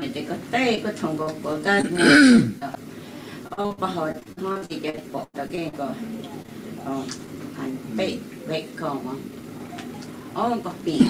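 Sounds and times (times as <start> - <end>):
person clearing throat: 1.7 - 2.6.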